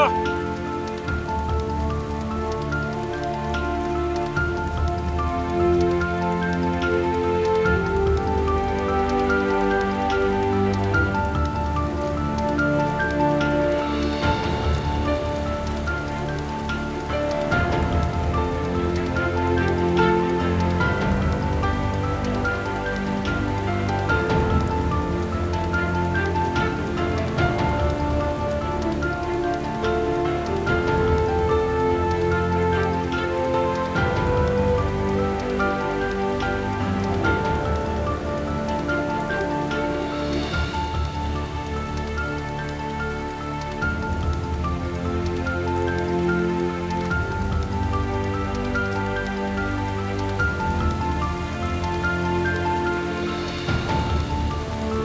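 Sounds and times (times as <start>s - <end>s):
heavy rain falling: 0.0s - 55.0s
slow film score: 0.0s - 55.0s.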